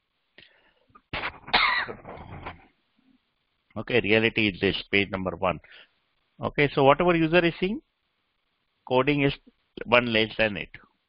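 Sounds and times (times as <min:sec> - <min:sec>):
person coughing: 0:01.5 - 0:02.6.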